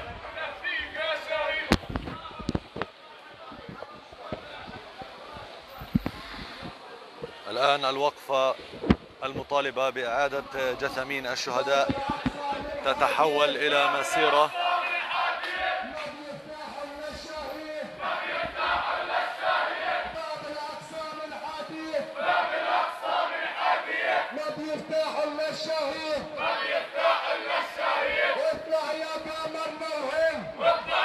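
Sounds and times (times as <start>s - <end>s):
crowd chanting slogans: 11.9s - 24.6s, 25.2s - 29.3s, 30.4s - 31.0s.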